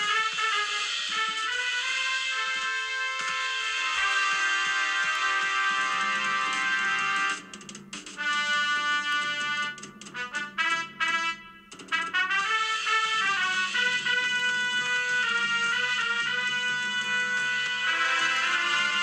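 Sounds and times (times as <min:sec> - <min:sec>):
jazz trumpet melody: 0:00.0 - 0:19.0.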